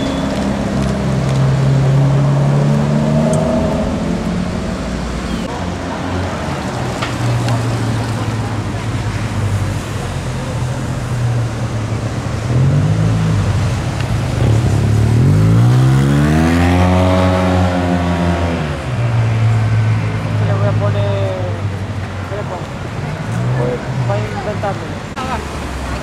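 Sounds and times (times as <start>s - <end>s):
vehicle engine accelerating: 0.0s - 8.5s, 9.5s - 21.0s.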